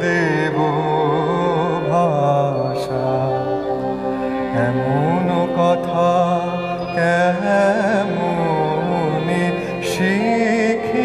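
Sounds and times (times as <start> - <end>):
man singing chant-like melody: 0.0 - 3.9, 4.5 - 11.0
steady drone: 0.0 - 11.0.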